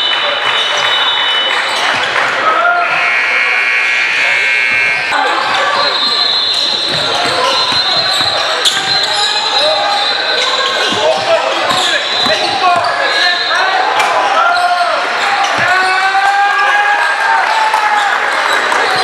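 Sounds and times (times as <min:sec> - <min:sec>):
spectators' voices echoing: 0:00.0 - 0:19.0
sneakers squeaking on court: 0:00.5 - 0:02.4, 0:04.7 - 0:13.8, 0:14.6 - 0:16.0.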